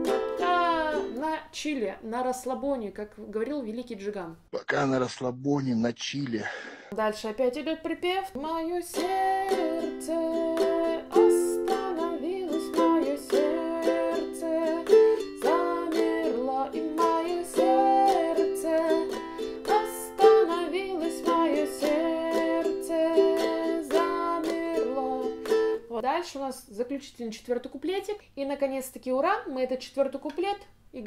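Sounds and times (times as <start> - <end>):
ukulele strumming: 0.0 - 1.4, 8.4 - 25.9
woman singing: 0.0 - 1.8, 7.0 - 25.8.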